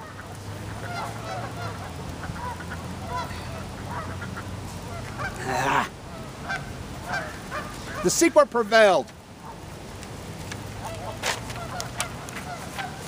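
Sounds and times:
geese honking: 0.0s - 8.4s, 10.8s - 13.0s
rustling rush: 0.0s - 13.0s.

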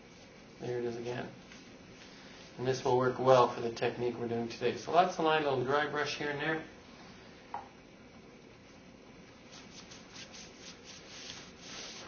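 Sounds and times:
paintbrush brushing on paper: 9.4s - 12.0s.

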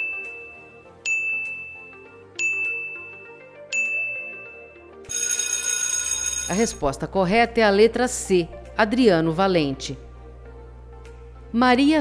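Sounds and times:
high bright dings: 0.0s - 5.4s
faint background music: 0.0s - 12.0s.

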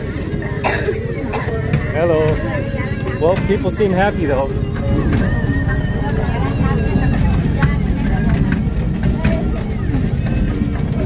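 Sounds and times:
carriages rattling and clattering: 0.0s - 11.0s
music: 0.0s - 11.0s
voices: 0.0s - 11.0s.

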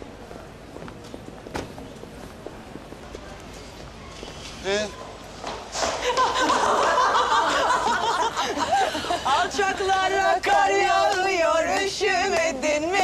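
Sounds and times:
faint street background: 0.0s - 13.0s
footsteps on pavement: 0.2s - 4.7s.

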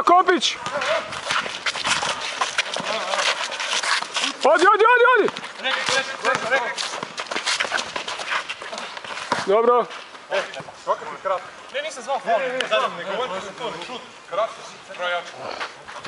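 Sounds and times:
basketball bouncing: 5.2s - 8.2s.

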